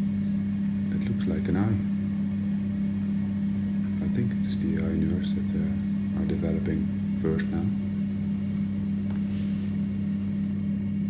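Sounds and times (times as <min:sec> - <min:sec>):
egg incubator electric hum: 0:00.0 - 0:11.0.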